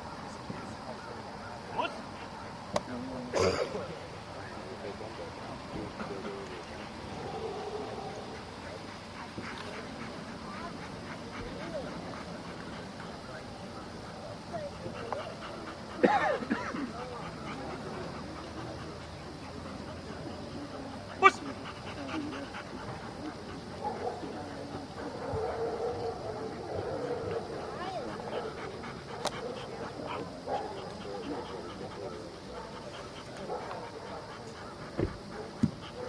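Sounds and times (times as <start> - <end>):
faint voices: 0.0 - 36.0.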